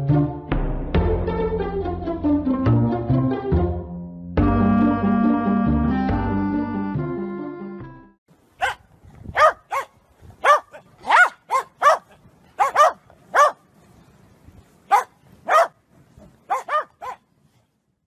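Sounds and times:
dog barking high-pitched: 0:08.6 - 0:13.6, 0:14.9 - 0:15.8, 0:16.5 - 0:17.2.

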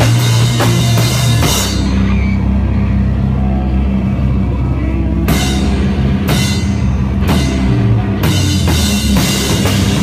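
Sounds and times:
rock band jamming: 0:00.0 - 0:10.0.

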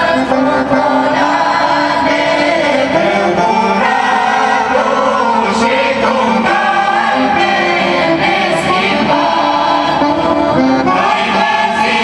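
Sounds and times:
choir singing a carol: 0:00.0 - 0:12.0.

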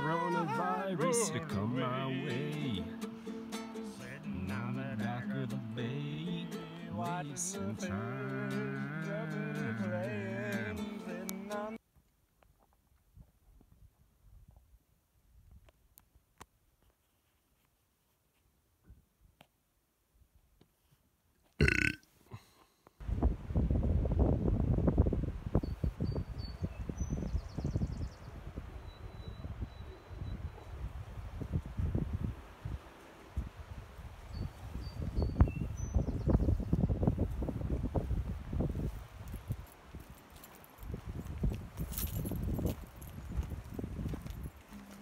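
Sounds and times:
wind on microphone: 0:23.0 - 0:40.1, 0:40.9 - 0:44.7.

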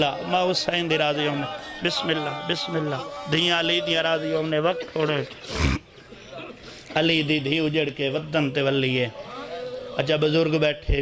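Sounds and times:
man chanting: 0:00.0 - 0:05.3, 0:07.0 - 0:11.0.

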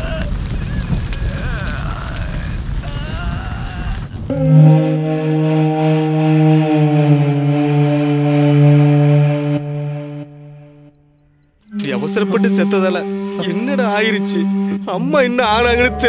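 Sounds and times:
long held orchestral note: 0:04.3 - 0:10.8, 0:11.7 - 0:16.0.

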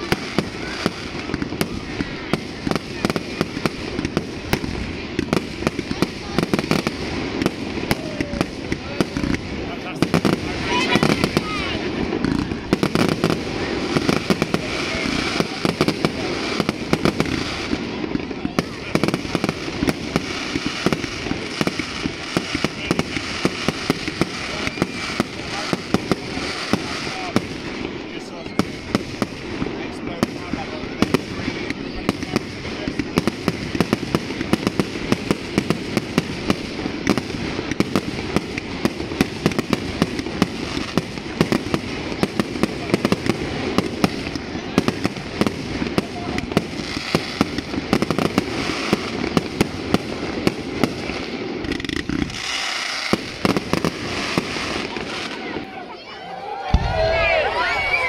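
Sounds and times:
fireworks bangs and crackling: 0:00.0 - 0:58.0.

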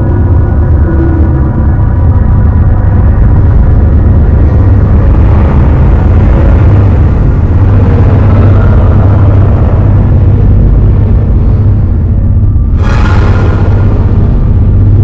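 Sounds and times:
low rumbling soundtrack drone: 0:00.0 - 0:15.0.

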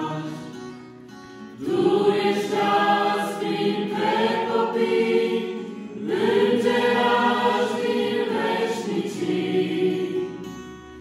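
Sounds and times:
choir singing a hymn: 0:00.0 - 0:00.6, 0:01.5 - 0:10.8
acoustic guitar: 0:00.0 - 0:11.0.

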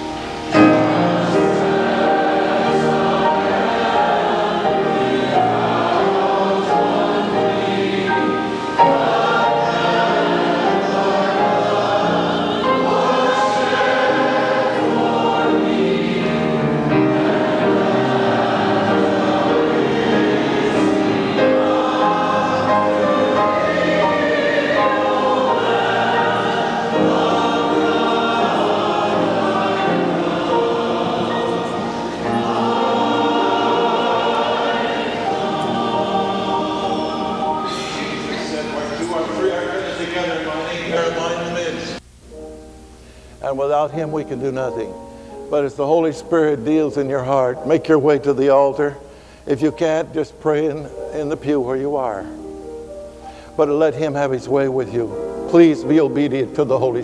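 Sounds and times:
congregation singing a hymn: 0:00.0 - 0:42.5, 0:43.4 - 0:57.0.

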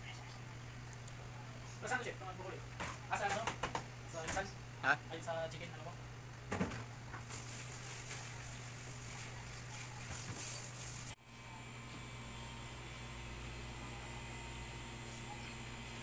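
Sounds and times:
oven fan humming: 0:00.0 - 0:16.0.

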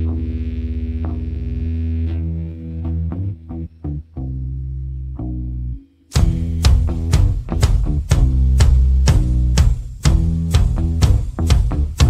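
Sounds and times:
throbbing low bass note: 0:00.0 - 0:12.0
drum hits: 0:06.2 - 0:12.0.

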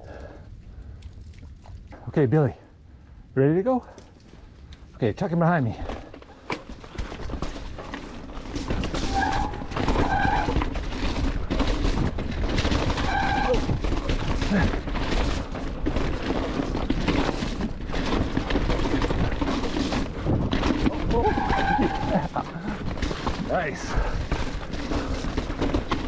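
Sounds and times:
bike tyre and trail noise: 0:00.0 - 0:26.0
rider exclaiming: 0:13.2 - 0:13.8, 0:20.9 - 0:22.7.

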